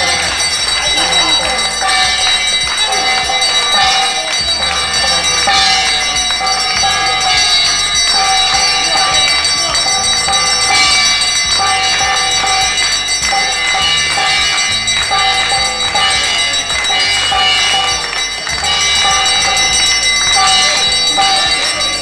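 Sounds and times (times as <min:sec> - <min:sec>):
bells ringing: 0:00.0 - 0:22.0
people clapping in rhythm: 0:00.0 - 0:22.0.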